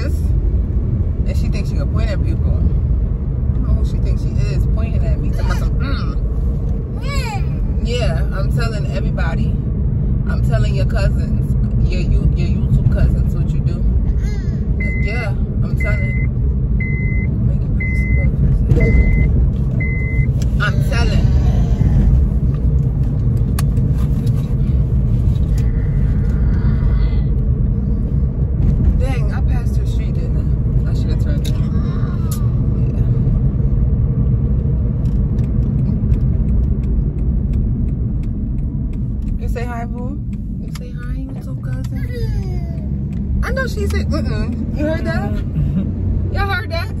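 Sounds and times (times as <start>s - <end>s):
road and engine rumble in car: 0.0s - 47.0s.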